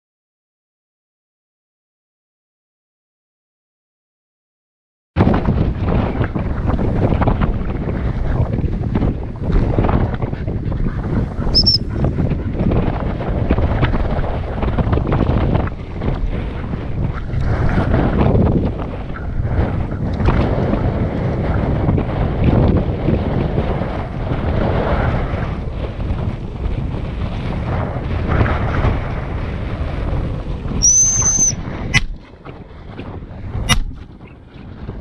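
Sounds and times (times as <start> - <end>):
wind buffeting microphone: 5.2 - 35.0.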